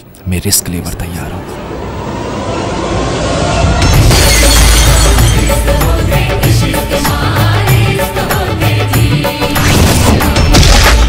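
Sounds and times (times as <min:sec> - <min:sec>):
background music: 0:00.2 - 0:11.0
rising build: 0:00.7 - 0:08.2
glass shattering: 0:03.9 - 0:05.7.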